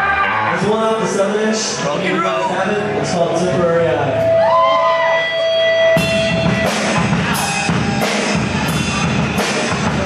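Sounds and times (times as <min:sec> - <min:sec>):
drums and distorted guitars: 0:02.3 - 0:10.0.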